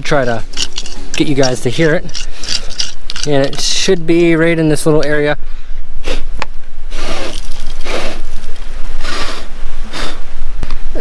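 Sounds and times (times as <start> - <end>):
metal detector scraping rock: 0.2 - 4.0, 6.9 - 9.4.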